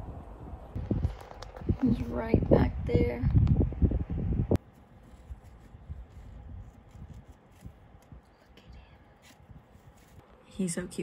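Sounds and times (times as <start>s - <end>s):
hand rubbing plastic leaves: 4.6s - 10.2s.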